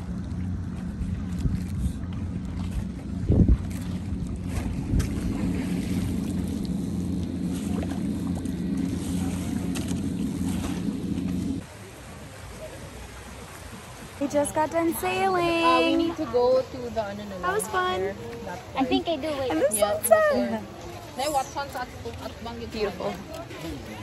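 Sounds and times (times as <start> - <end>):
steady low hum: 0.0 - 12.1
water rushing past boat: 0.0 - 24.0.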